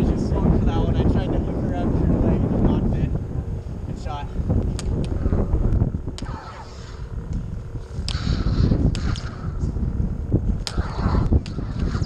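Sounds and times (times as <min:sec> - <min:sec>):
low rumble of wind on microphone: 0:00.0 - 0:12.0
lightsaber blades clacking: 0:04.6 - 0:09.8, 0:10.4 - 0:12.0.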